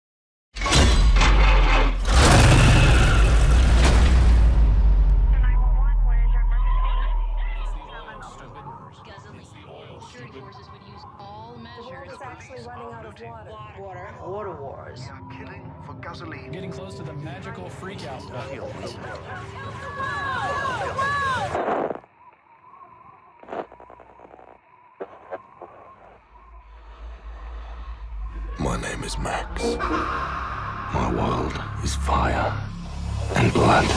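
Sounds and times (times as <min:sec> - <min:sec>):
low rumble: 0:03.3 - 0:08.4, 0:26.0 - 0:33.9
warbling radio interference squeals: 0:21.6 - 0:27.1.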